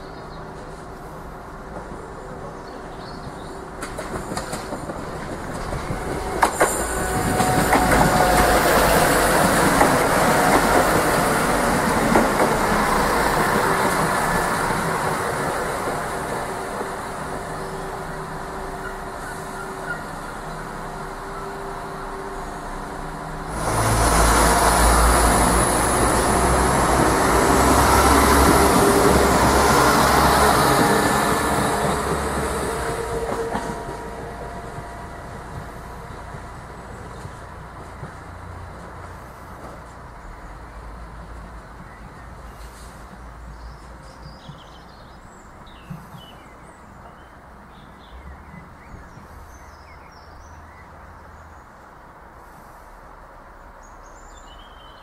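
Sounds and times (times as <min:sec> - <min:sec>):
diesel train engine hum: 0:00.0 - 0:49.5
train wheels rumbling on track: 0:00.0 - 0:53.8.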